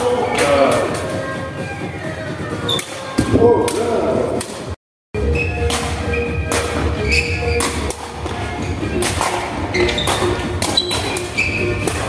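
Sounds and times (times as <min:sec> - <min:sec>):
ball kicks echoing in sports hall: 0:02.7 - 0:04.8, 0:05.5 - 0:12.0.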